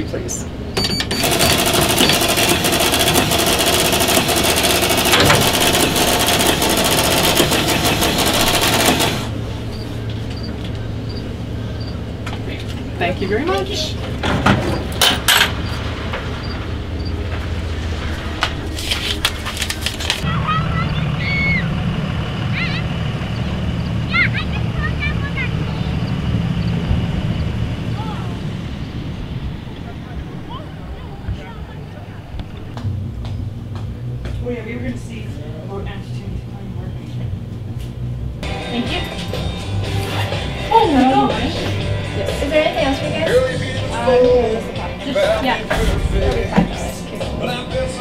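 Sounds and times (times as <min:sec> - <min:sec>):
receipt printer rapid clicking: 0:00.8 - 0:09.4
low rumble: 0:15.6 - 0:39.0
high-pitched chirping calls: 0:20.3 - 0:21.7.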